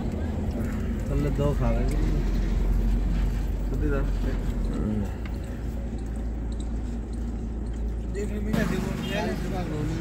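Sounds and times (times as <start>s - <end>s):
car rumble from inside cabin: 0.0s - 10.0s.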